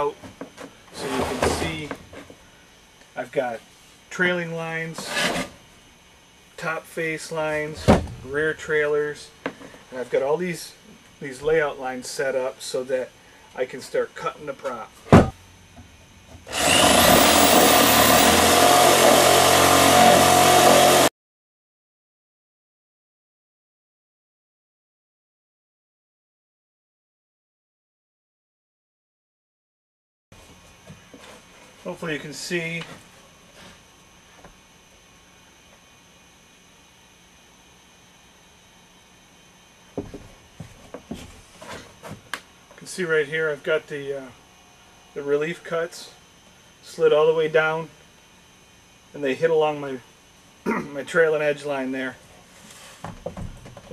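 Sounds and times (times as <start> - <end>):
room tone hiss and hum: 0.0 - 20.6, 30.4 - 53.9
reciprocating saw cutting wood: 5.0 - 5.6, 16.5 - 21.1.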